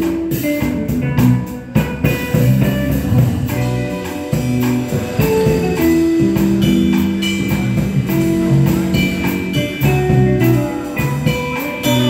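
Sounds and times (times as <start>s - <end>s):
drum kit cymbals: 0.0s - 12.0s
electric bass: 0.0s - 12.0s
electric guitar melody: 0.0s - 12.0s.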